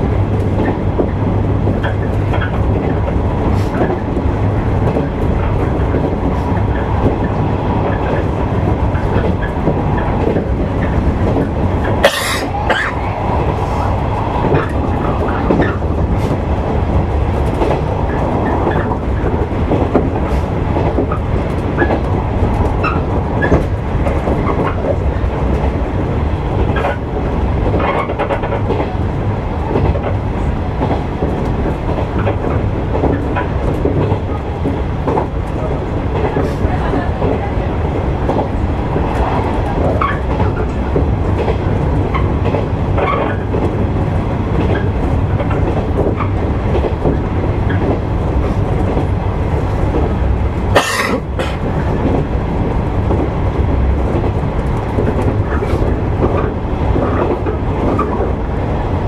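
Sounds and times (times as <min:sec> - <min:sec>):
train running gear rumble: 0:00.0 - 0:59.0.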